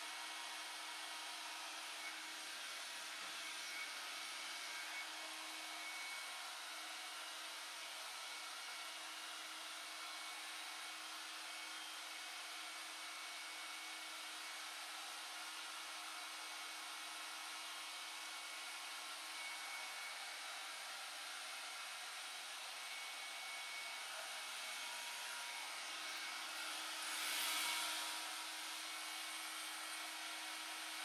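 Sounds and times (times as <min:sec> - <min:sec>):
hair dryer blowing: 0:00.0 - 0:31.0.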